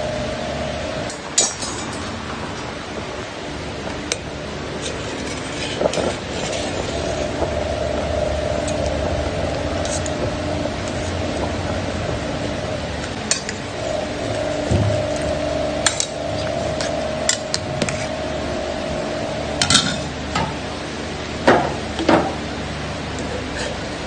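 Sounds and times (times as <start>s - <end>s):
pot boiling with steady hiss: 0.0s - 24.0s.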